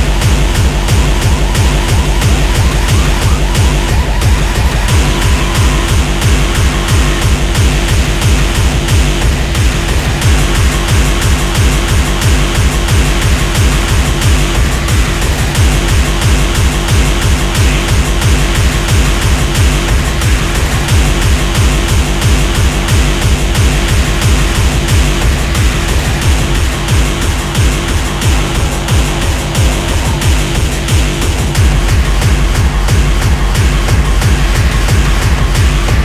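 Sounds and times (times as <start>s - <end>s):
distorted synth layers: 0.0s - 36.0s
steady kick drum: 0.0s - 36.0s.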